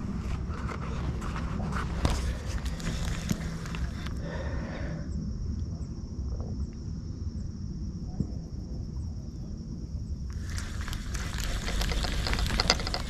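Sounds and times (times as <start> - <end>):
steady low rumble: 0.0 - 13.0
crackly hissing splashing: 10.3 - 13.0
spinning reel retrieving line: 10.4 - 13.0.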